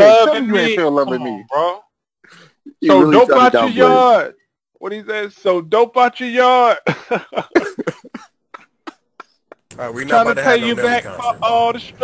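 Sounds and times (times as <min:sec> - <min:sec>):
man laughing: 0:06.8 - 0:09.7.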